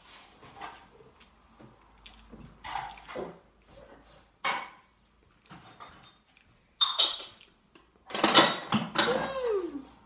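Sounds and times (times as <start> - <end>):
dishes and cutlery clattering: 5.5 - 7.5, 8.1 - 9.3.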